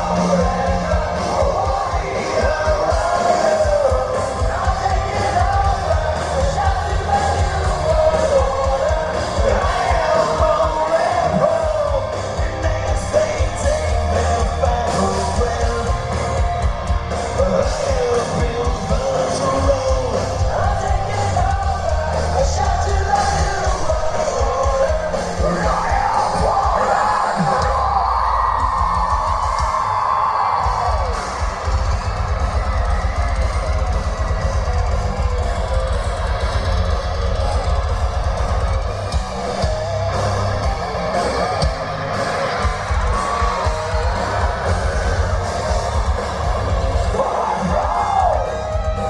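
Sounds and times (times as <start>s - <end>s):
bass guitar: 0.0s - 49.0s
distorted electric guitars: 0.0s - 49.0s
drums: 0.0s - 49.0s
singer screaming and singing: 0.0s - 49.0s.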